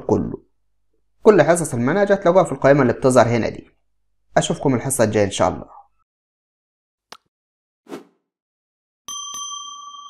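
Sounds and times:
bell ringing: 0:09.1 - 0:10.0.

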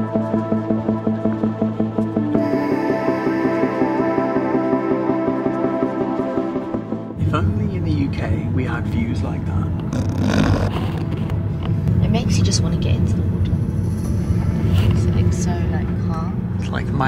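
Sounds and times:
car engine and road noise: 0:06.6 - 0:17.0
people talking: 0:07.2 - 0:09.7, 0:12.0 - 0:13.2, 0:14.9 - 0:17.0.

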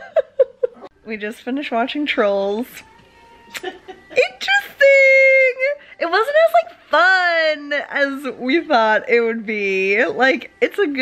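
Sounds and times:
woman speaking: 0:01.0 - 0:02.9, 0:04.1 - 0:11.0.

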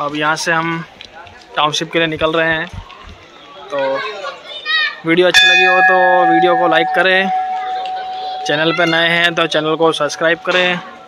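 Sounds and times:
crowd murmur: 0:02.7 - 0:11.0.

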